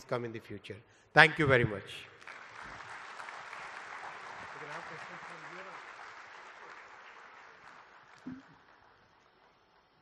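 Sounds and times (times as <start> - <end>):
audience applauding: 2.2 - 10.0.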